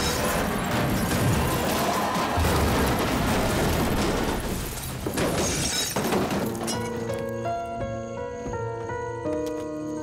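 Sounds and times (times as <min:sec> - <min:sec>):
glass shattering: 0:00.0 - 0:07.2.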